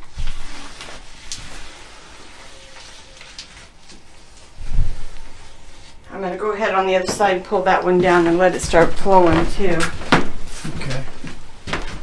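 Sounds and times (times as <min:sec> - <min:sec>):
tape peeling with crackling rip: 0:00.1 - 0:05.4.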